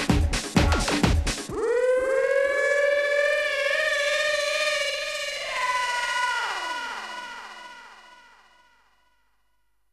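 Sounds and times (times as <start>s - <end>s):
siren-like synth tone: 1.5s - 8.8s.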